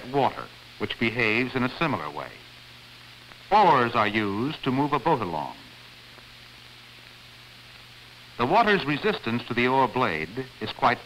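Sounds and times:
film soundtrack hiss and hum: 0.0 - 11.0.

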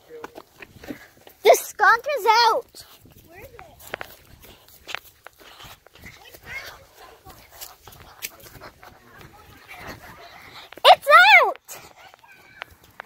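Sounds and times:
faint background voices: 2.7 - 12.9.

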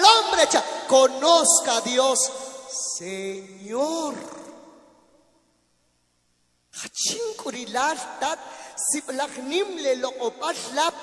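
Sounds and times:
man speaking through microphone: 0.0 - 4.6, 6.8 - 11.0.

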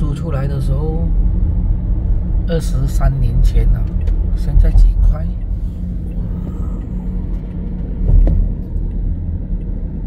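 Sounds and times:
car cabin road rumble: 0.0 - 10.0
low thump: 7.9 - 8.9.

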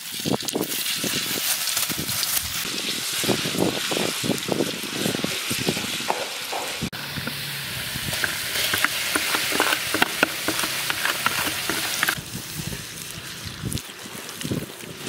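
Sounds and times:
frying crackling sharply: 0.0 - 15.0
paste sizzling in hot oil: 0.0 - 15.0
wooden spatula stirring: 8.0 - 12.2.

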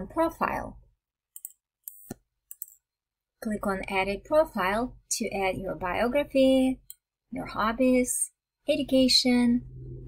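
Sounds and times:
computer mouse clicks: 1.3 - 2.8.

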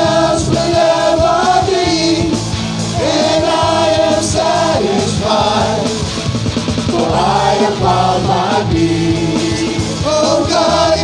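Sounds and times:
bass guitar: 0.0 - 11.0
drums: 0.0 - 11.0
electric guitar: 0.0 - 11.0
keyboard: 0.0 - 11.0
singers holding long notes: 0.0 - 11.0.

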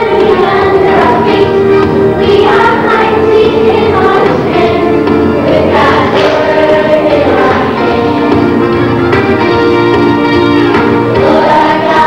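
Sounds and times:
children singing: 0.0 - 8.6, 10.5 - 12.0
musical accompaniment: 0.0 - 12.0.

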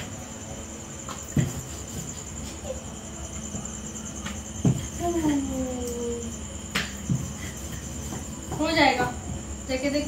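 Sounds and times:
steady high chirring: 0.0 - 10.0.

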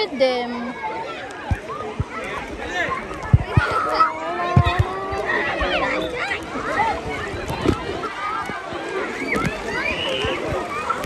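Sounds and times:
voices calling and chattering: 0.0 - 11.0
water splashing: 0.0 - 11.0.

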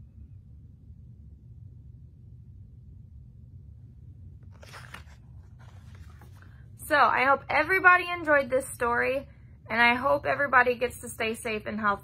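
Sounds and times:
paper pages rustling: 4.4 - 6.6.

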